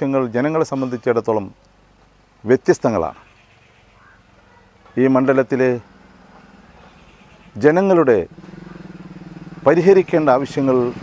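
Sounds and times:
man speaking: 0.0 - 1.6, 5.0 - 5.8, 9.6 - 11.0
small engine humming: 5.4 - 11.0.

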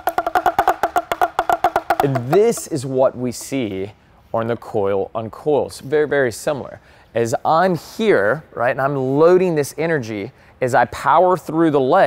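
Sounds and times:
pellet drum rattling: 0.0 - 3.7.

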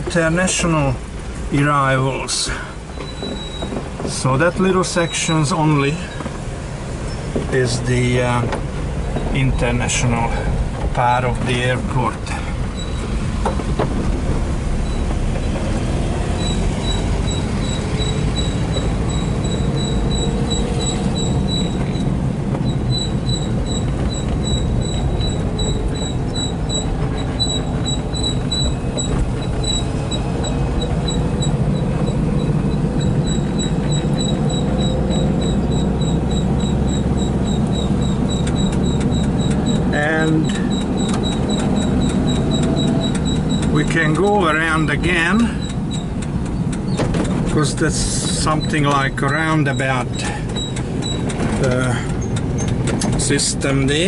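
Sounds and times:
engine droning: 0.0 - 54.0
road noise: 0.0 - 54.0
high regular ticking: 6.8 - 54.0.

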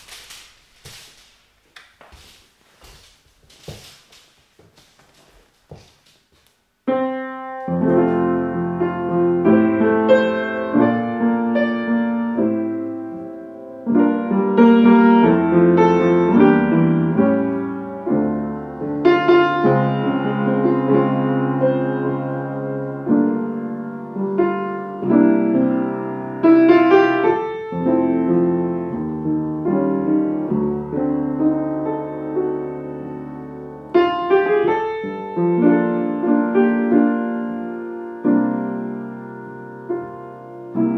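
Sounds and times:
upright piano chords: 6.8 - 40.9.

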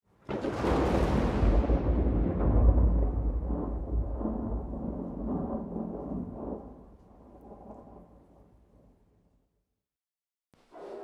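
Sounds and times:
rolling thunder: 0.2 - 8.4.

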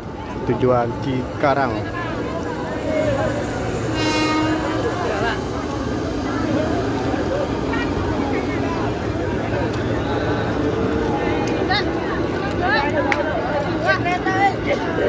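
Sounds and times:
crowd voices: 0.0 - 15.0
electric train rolling on track: 0.0 - 15.0
train horn: 3.8 - 5.4.

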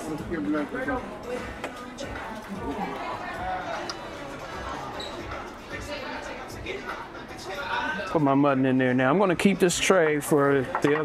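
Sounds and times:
background chatter: 0.0 - 11.0
restaurant music: 0.0 - 11.0.

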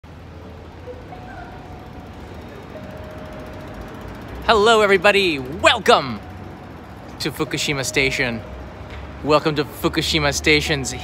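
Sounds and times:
distant road traffic rumble: 0.1 - 11.0.

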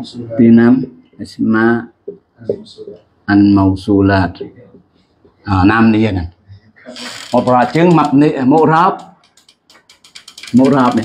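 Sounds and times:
man talking: 0.0 - 9.2, 10.5 - 11.0
faint clicks: 9.0 - 11.0.

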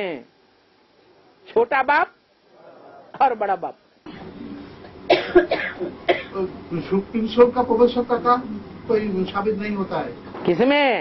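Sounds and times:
person coughing: 5.1 - 6.5.

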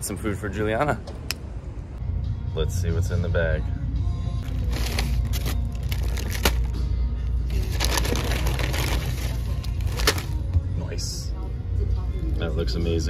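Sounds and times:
background music with bass: 2.0 - 13.0
paper wrappers crinkling: 4.5 - 6.8, 7.5 - 10.4.

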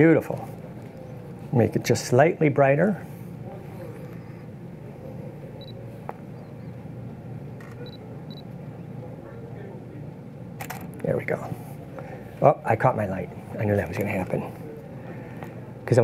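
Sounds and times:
camera focus beeps: 5.6 - 5.8, 7.6 - 8.5
camera shutter firing: 10.6 - 10.9.

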